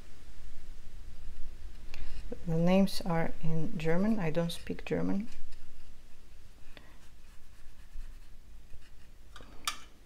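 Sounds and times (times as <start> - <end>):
paintbrush scratching on paper: 3.5 - 9.2.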